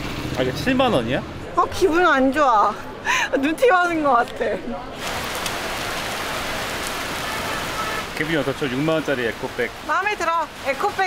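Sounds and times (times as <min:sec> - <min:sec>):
heavy rain on street: 0:00.0 - 0:11.0.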